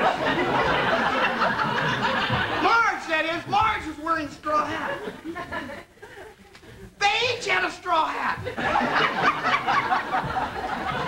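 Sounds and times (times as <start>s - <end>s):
many people laughing: 0.0s - 7.2s, 8.1s - 11.0s.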